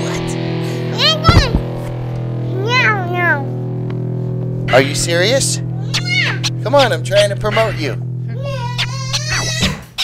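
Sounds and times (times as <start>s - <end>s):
background music: 0.0s - 9.6s.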